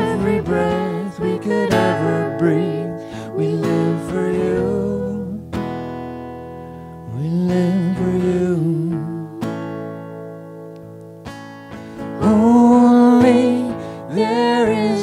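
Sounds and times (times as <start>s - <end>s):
person singing: 0.0s - 5.5s, 7.1s - 9.7s, 12.2s - 15.0s
acoustic guitar strumming chords: 0.0s - 15.0s.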